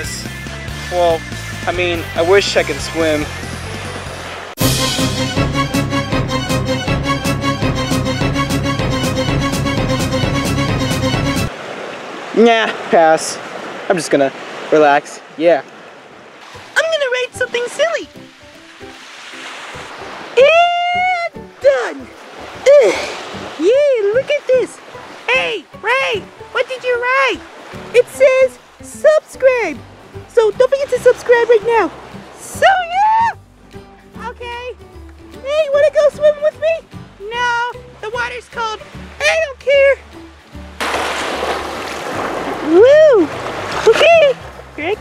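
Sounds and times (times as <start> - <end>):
background music with bending melody: 0.0 - 11.5, 16.4 - 45.0
small waves lapping on pebbles: 11.5 - 20.4, 40.1 - 45.0.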